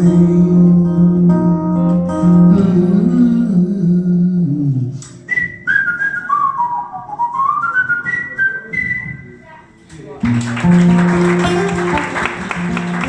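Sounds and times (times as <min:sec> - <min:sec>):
person singing: 0:00.0 - 0:05.0
faint acoustic guitar: 0:00.0 - 0:13.0
person whistling a blues melody: 0:05.0 - 0:09.4.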